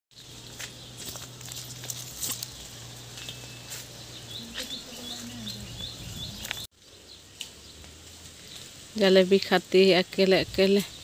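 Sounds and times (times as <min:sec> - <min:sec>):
small bird chirping: 0:00.1 - 0:08.7
leaves brushing clicks: 0:00.1 - 0:09.4.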